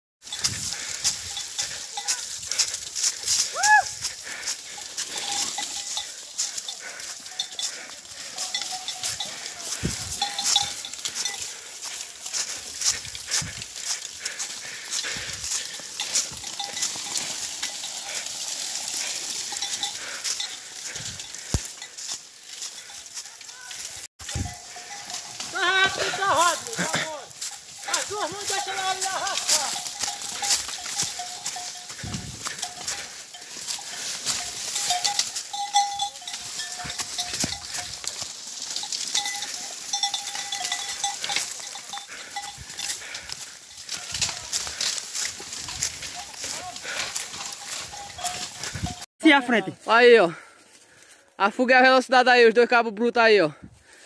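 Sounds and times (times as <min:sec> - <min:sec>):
brush and branches crackling: 0:00.2 - 0:49.0
clanking bell: 0:00.2 - 0:49.6
man speaking: 0:25.5 - 0:29.8, 0:49.2 - 0:50.4, 0:51.4 - 0:53.6.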